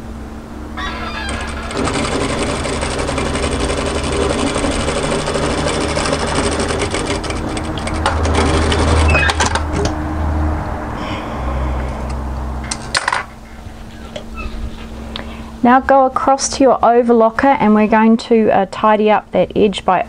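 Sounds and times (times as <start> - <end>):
low motor hum: 0.0 - 12.7
sewing machine stitching: 0.9 - 9.6.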